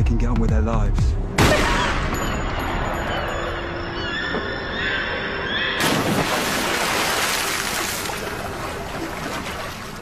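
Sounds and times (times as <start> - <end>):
heavy splash into water: 5.8 - 9.8
spray and churning water: 6.3 - 10.0.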